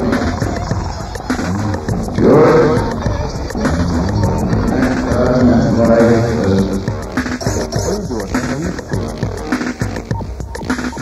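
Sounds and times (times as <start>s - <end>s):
percussive electronic beat: 0.0s - 11.0s
sustained synthesizer tones: 0.0s - 11.0s.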